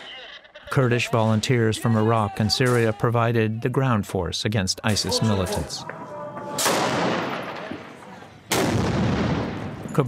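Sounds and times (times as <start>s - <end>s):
heavy gunshot echoing: 6.6s - 7.7s, 8.5s - 9.8s
rocket launcher blast: 8.5s - 9.8s.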